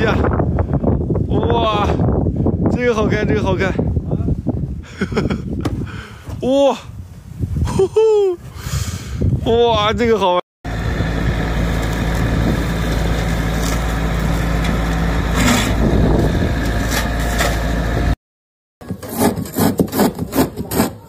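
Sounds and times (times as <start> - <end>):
truck engine and hedge cutter drone: 10.7 - 18.2.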